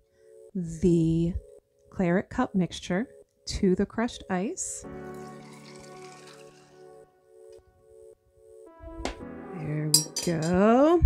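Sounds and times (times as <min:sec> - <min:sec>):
background music: 0:00.0 - 0:11.0
liquid pouring over ice: 0:04.9 - 0:07.1.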